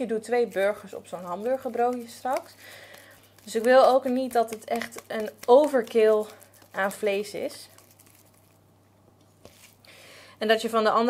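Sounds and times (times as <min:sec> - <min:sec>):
soft squishing of raw meat: 0:00.4 - 0:09.9.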